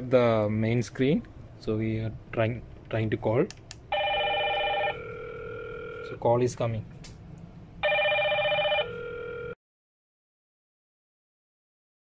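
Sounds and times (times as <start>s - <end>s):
intercom electronic ringtone: 3.9s - 6.2s, 7.8s - 9.6s.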